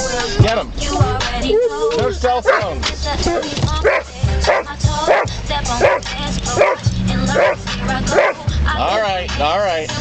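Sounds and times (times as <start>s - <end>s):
music: 0.0s - 10.0s
dog barking: 2.4s - 2.7s, 3.3s - 8.4s.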